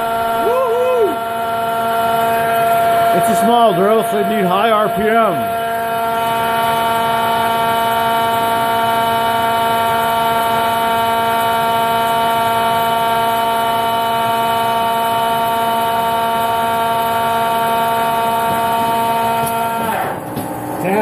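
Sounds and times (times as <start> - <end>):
lathe high-pitched whine: 0.0 - 21.0.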